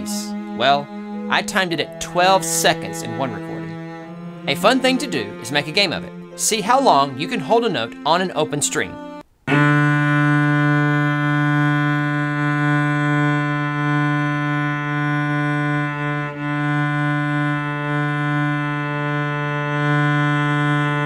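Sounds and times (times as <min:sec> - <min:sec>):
cello bowed note: 0:00.0 - 0:21.0.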